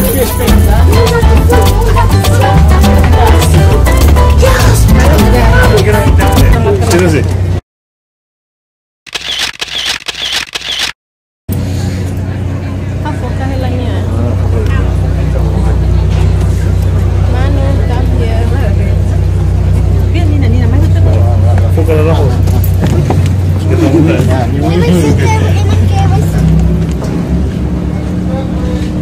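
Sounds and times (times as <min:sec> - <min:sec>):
people talking: 0:00.0 - 0:03.7, 0:04.4 - 0:07.3, 0:11.7 - 0:26.8, 0:27.9 - 0:29.0
ferry engines humming: 0:11.5 - 0:29.0.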